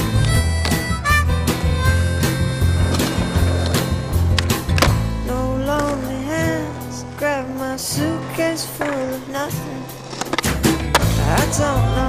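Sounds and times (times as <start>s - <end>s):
skateboard wheels rolling on concrete: 0.0s - 12.0s
skateboard clacks and pops: 2.7s - 5.0s, 9.9s - 11.5s.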